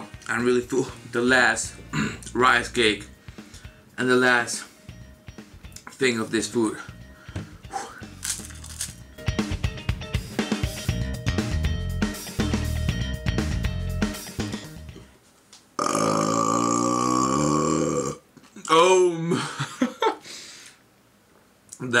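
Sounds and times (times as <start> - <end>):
music with drum beat: 5.0 - 5.8, 9.1 - 15.0
long loud belch: 15.8 - 18.8.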